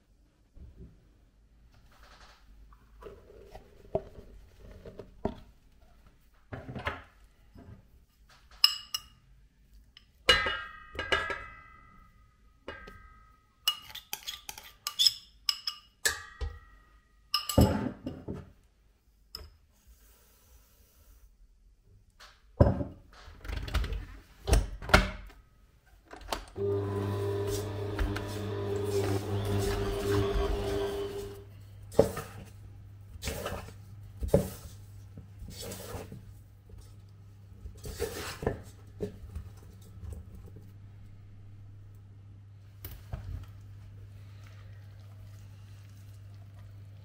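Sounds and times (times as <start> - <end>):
mixer motor humming: 26.6 - 31.5.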